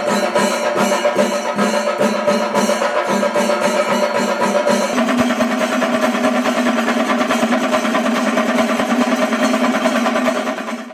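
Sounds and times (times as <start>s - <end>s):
drums beaten with sticks: 0.0s - 10.9s.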